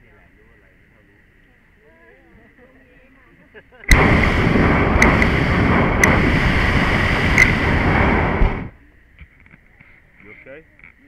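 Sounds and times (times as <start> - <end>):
sharp clicks: 3.9 - 8.6
propane burner roaring: 3.9 - 8.8.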